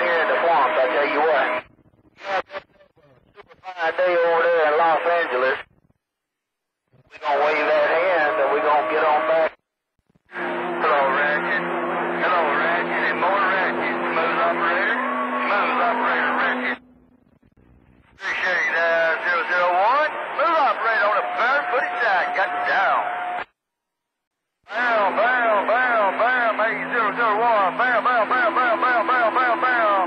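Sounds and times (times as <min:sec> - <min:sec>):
garbled radio voices: 0:00.0 - 0:05.8, 0:07.0 - 0:09.6, 0:10.3 - 0:16.8, 0:18.1 - 0:23.4, 0:24.7 - 0:30.0
steady low tones: 0:10.1 - 0:18.2, 0:24.7 - 0:30.0.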